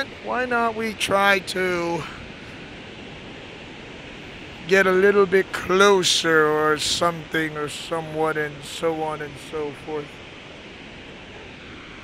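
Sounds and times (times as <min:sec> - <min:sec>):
waterfall roaring: 0:00.0 - 0:12.0.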